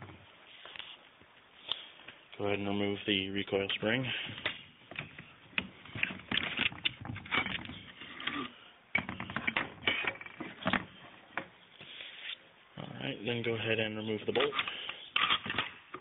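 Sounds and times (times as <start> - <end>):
rifle parts clicking and scraping: 4.4 - 8.6, 14.3 - 16.0.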